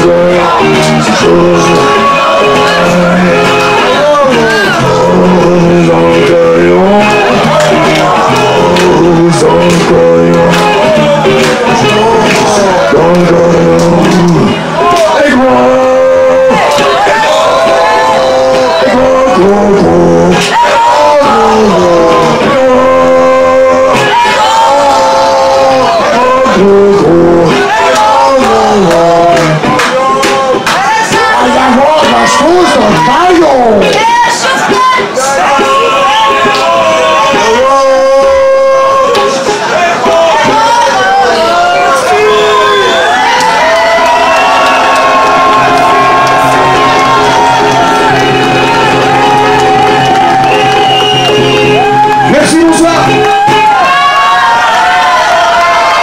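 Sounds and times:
crowd cheering and shouting: 0.0 - 56.0
live band playing sliding melody: 0.0 - 56.0
electric guitar held notes: 43.8 - 53.9.

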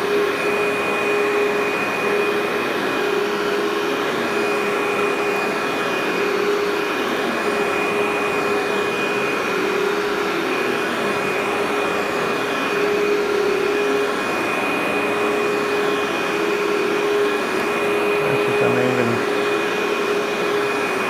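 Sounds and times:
upright vacuum cleaner running: 0.0 - 21.0.

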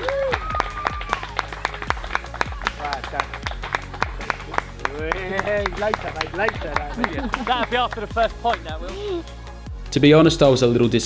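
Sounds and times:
small group clapping: 0.0 - 8.9
background music with steady beat: 0.0 - 11.0.

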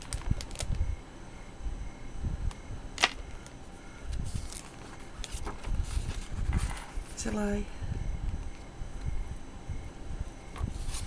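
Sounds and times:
paper pages rustling: 4.2 - 7.1, 10.6 - 11.0.

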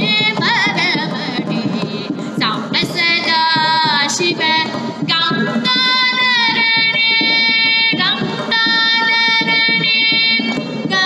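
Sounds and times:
hand percussion: 0.0 - 11.0
woman singing: 0.0 - 11.0.

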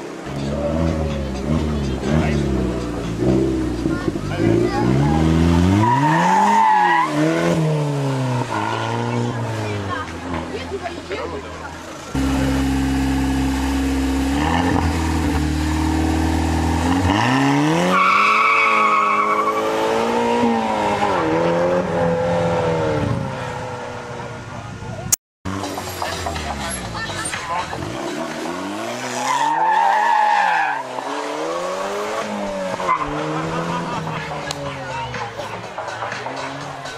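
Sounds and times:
car engine revving: 0.0 - 24.4, 25.5 - 36.9.

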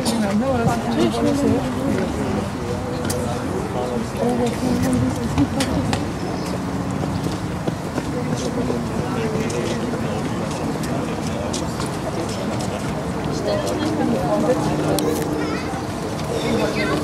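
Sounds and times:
indistinct voices talking: 0.0 - 17.0
outdoor background noise: 0.0 - 17.0.

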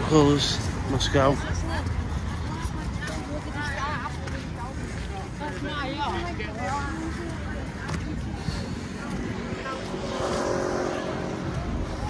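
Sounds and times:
vehicle engine passing by: 8.4 - 12.0.

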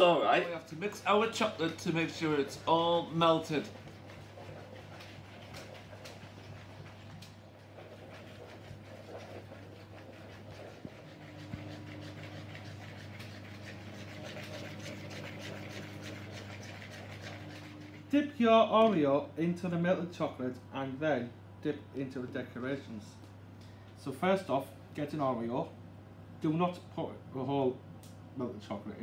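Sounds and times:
spoons scraping plastic bowls: 7.6 - 18.0.

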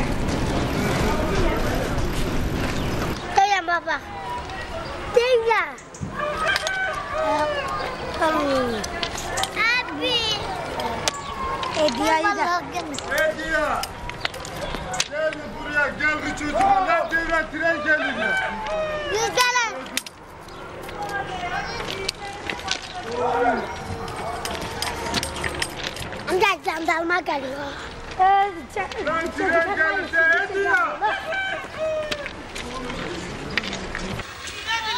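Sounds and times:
outdoor background noise: 0.0 - 34.9
children's voices: 3.1 - 13.2, 18.9 - 20.0, 20.9 - 25.6, 26.2 - 29.8, 32.6 - 34.9
rooster crowing: 6.2 - 7.8, 17.7 - 19.2, 31.0 - 32.4.

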